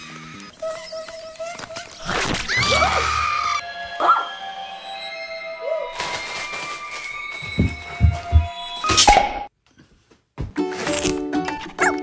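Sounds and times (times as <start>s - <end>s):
background music: 2.6s - 9.4s, 10.5s - 12.0s.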